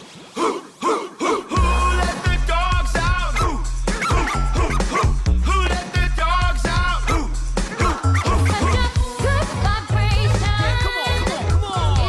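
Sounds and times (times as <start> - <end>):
high cartoonish voices singing: 0.4 - 12.0
upbeat pop music: 1.5 - 12.0.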